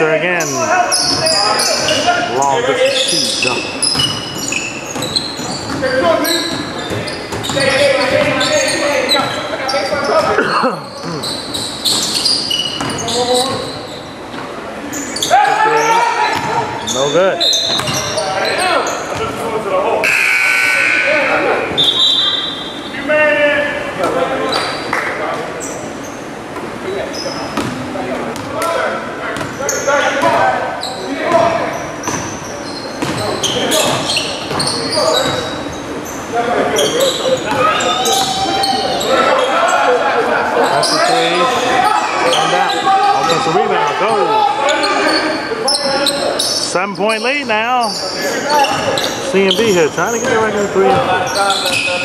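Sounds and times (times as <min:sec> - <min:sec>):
voices echoing in a gym: 0:00.0 - 0:52.0
basketball bouncing on hardwood: 0:17.7 - 0:18.1.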